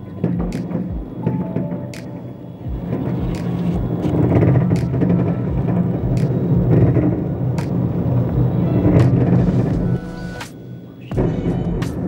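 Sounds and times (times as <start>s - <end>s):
fireworks bangs: 0.0s - 12.0s
music: 0.0s - 12.0s
low rumble: 2.7s - 10.4s.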